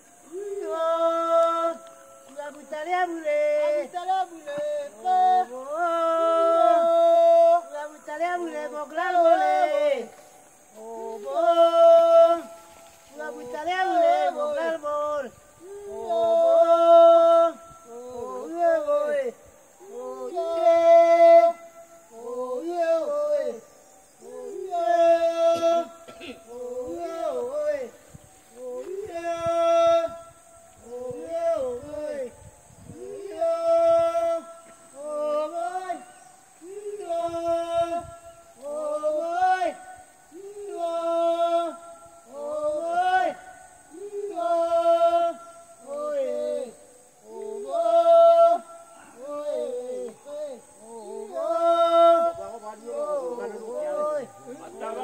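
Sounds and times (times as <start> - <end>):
voices chanting: 0.0 - 55.0.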